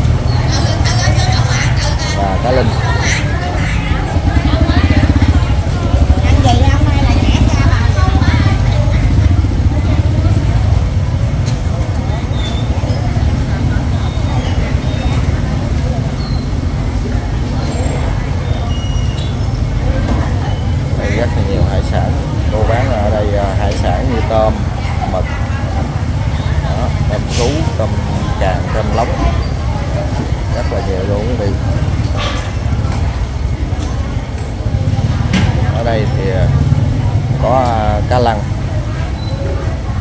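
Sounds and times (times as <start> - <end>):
motorbike engines rumbling: 0.0 - 40.0
people talking: 0.0 - 40.0.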